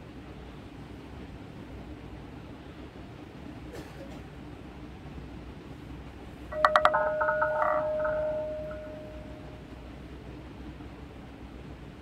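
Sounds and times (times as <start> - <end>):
electronic chime: 6.5 - 9.5.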